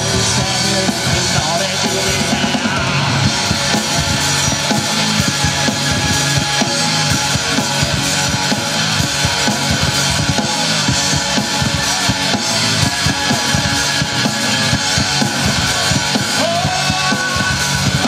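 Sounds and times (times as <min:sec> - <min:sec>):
bass guitar: 0:00.0 - 0:18.0
drum kit fast rhythm: 0:00.0 - 0:18.0
electric guitars: 0:00.0 - 0:18.0.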